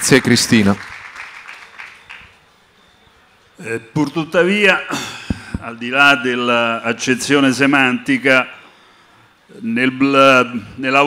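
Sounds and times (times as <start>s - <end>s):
audience applause: 0.0s - 2.5s.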